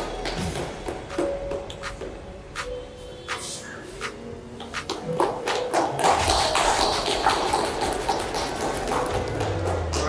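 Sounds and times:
people clapping: 0.0s - 2.7s, 3.3s - 10.0s
background music: 0.0s - 10.0s.

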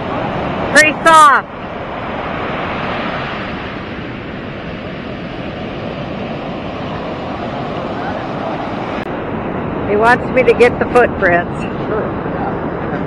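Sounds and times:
ocean surf breaking on beach: 0.0s - 13.0s.

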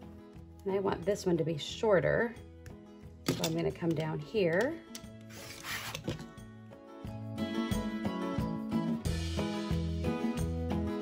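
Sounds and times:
background music: 0.0s - 11.0s
rotary cutter slicing fabric: 5.3s - 6.1s.

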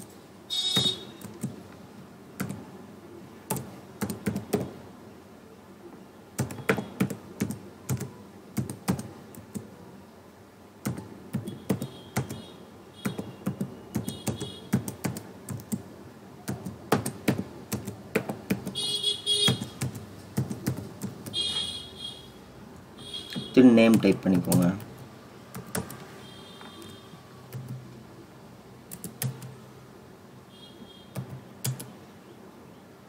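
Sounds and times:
keyboard keystroke clicks: 25.6s - 26.0s, 28.9s - 29.6s, 31.2s - 31.9s.

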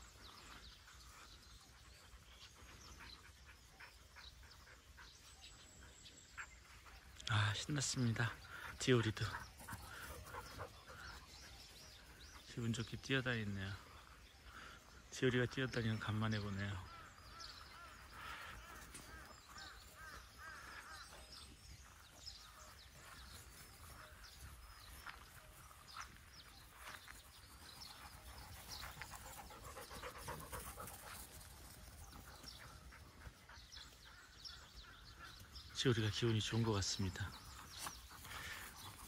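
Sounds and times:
dogs panting: 0.0s - 7.2s, 8.0s - 12.6s, 16.8s - 35.8s, 36.6s - 39.0s.

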